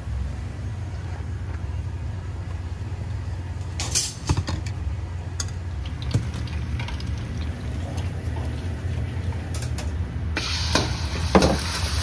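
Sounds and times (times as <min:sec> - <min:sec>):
kitchen equipment humming: 0:00.0 - 0:12.0.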